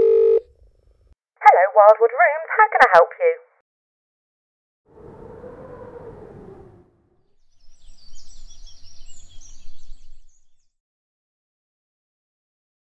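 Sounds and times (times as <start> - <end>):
faint rising and falling tone: 4.9 - 7.9
birds chirping: 7.6 - 10.5.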